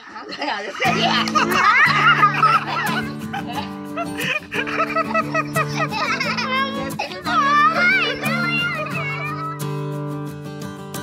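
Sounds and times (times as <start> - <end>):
strummed guitar chords: 0.8 - 11.0.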